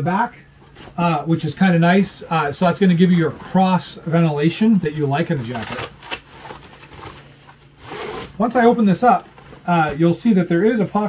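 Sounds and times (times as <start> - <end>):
jacket rustling and scraping: 0.4 - 11.0
jacket closure rasp: 5.4 - 8.6.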